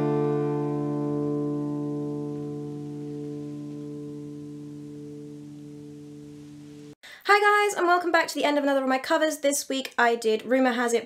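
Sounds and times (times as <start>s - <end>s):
acoustic guitar chord ringing: 0.0s - 7.0s.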